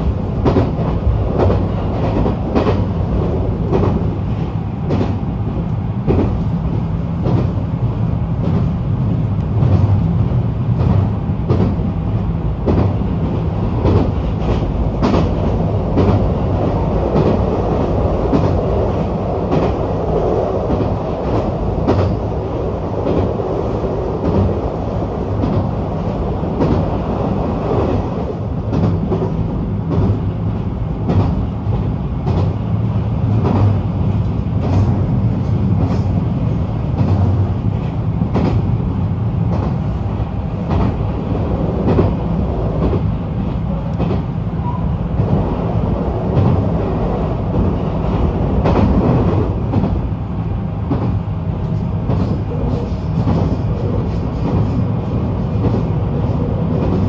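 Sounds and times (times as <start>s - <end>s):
train rumble inside carriage: 0.0s - 57.0s.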